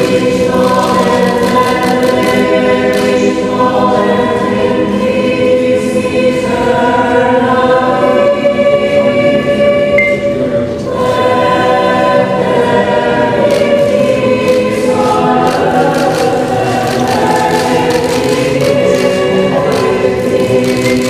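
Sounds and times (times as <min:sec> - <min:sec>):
choir singing held chords: 0:00.0 - 0:21.0.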